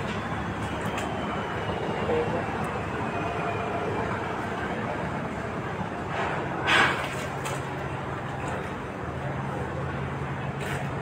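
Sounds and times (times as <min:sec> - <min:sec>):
boat engines droning: 0:00.0 - 0:11.0
faint voices: 0:00.1 - 0:05.3.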